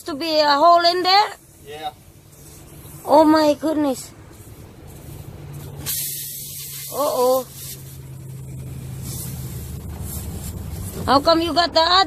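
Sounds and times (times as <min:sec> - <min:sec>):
vehicle engine rumble: 0:00.0 - 0:12.0
air hissing out of tire: 0:01.4 - 0:11.2.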